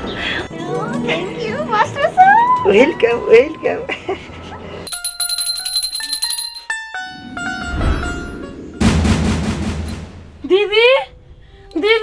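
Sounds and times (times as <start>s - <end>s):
background music with melody: 0.0s - 12.0s
small hand bell rung rapidly: 4.9s - 6.9s.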